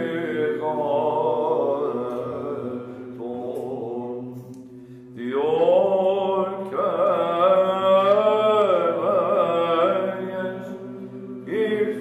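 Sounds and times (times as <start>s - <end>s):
men singing held drone: 0.0s - 12.0s
man chanting melismatic line: 5.1s - 12.0s.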